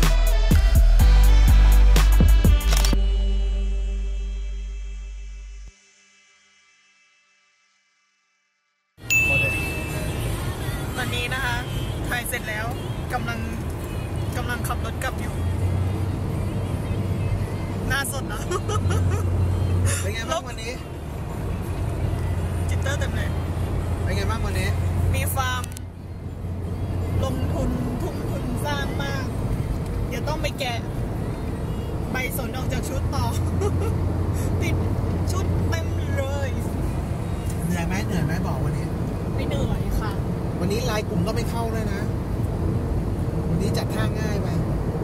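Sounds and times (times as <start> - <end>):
music playing: 0.0 - 6.4, 9.0 - 12.2
car road noise rumble: 9.0 - 45.0
people's voices: 17.7 - 20.9.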